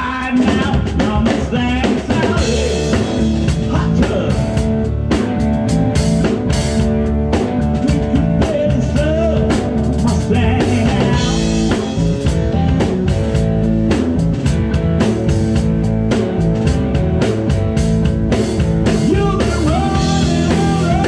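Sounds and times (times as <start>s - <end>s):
drum kit beat: 0.0s - 21.0s
electric guitars: 0.0s - 21.0s.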